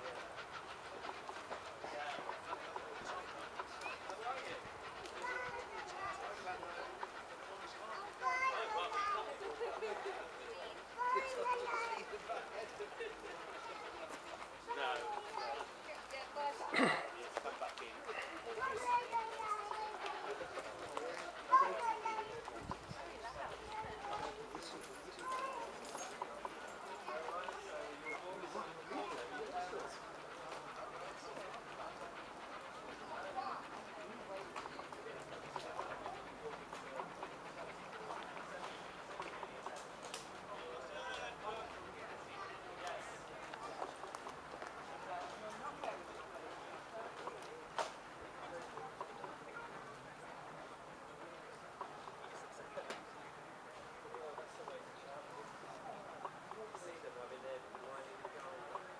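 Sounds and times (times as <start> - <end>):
children chattering: 0.0 - 58.9
faint indistinct talking: 0.0 - 58.9.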